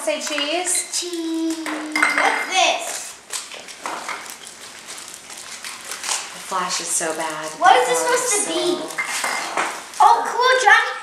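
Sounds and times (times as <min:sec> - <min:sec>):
toys and wrappers rustling: 0:02.8 - 0:10.8.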